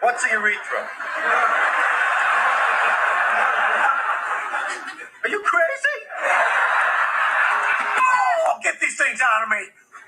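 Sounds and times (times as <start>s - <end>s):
studio audience laughing: 0.0s - 8.1s.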